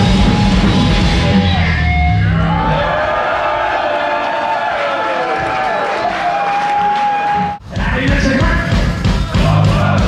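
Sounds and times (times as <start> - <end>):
heavy metal band playing: 0.0 - 3.4, 7.3 - 10.0.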